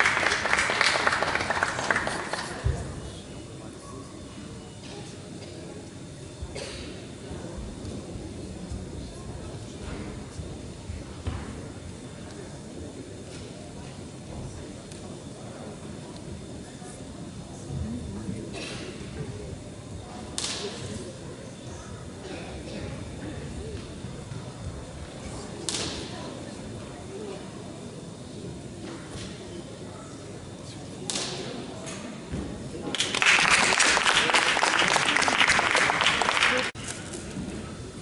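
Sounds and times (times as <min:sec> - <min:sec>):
audience clapping: 0:00.0 - 0:02.7, 0:32.9 - 0:36.8
murmur of voices: 0:00.0 - 0:38.0.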